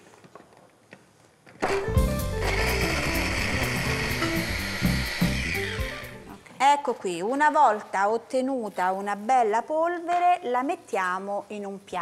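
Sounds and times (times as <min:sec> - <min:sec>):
mini chopper motor whirring: 0:02.3 - 0:06.3.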